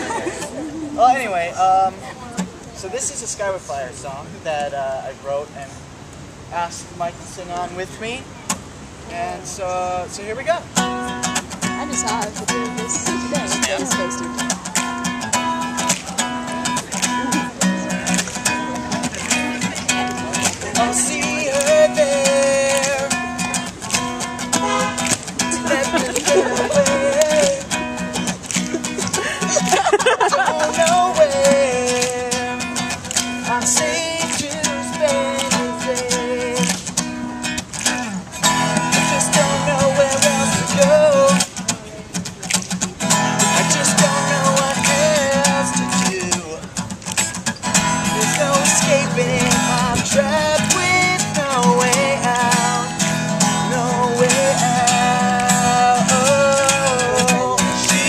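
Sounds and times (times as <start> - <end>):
acoustic guitar strumming: 6.6 - 58.0
men singing: 17.1 - 23.4, 25.5 - 28.1, 29.0 - 32.8, 33.4 - 36.8, 38.5 - 41.6, 43.4 - 46.6, 48.0 - 58.0.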